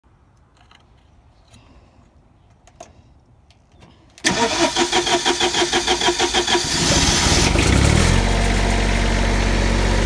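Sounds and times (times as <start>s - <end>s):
starter motor cranking: 4.2s - 7.7s
generator engine starting and running: 4.2s - 10.0s.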